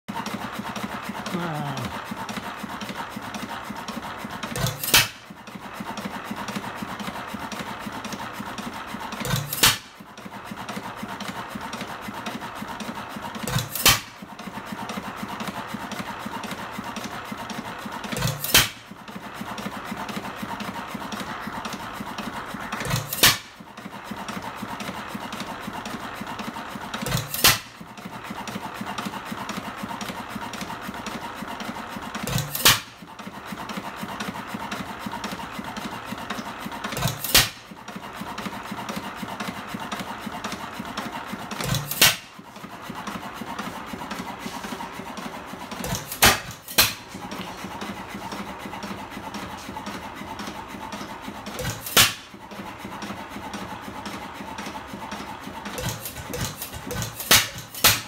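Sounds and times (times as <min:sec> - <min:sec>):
engine mechanical clatter: 0:00.0 - 0:58.0.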